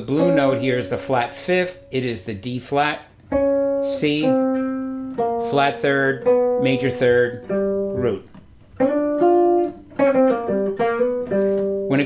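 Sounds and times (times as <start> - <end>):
clean electric guitar blues riff: 0.0 - 12.0.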